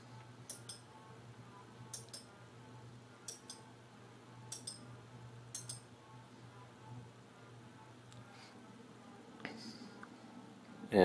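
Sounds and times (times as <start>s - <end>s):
low steady hum: 0.0s - 11.0s
short light clicks in pairs: 1.9s - 2.3s, 4.5s - 4.8s, 5.5s - 5.8s.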